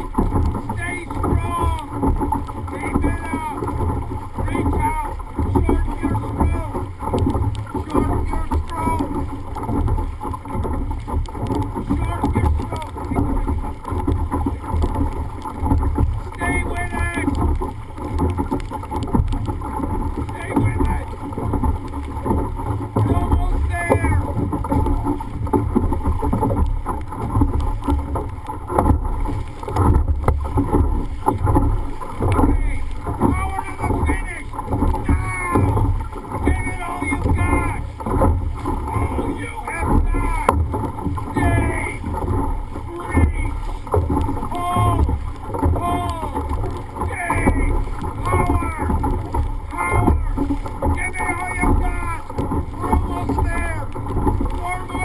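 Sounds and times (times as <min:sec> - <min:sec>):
paddles splashing: 0:00.0 - 0:55.0
short shouted calls: 0:51.0 - 0:52.2.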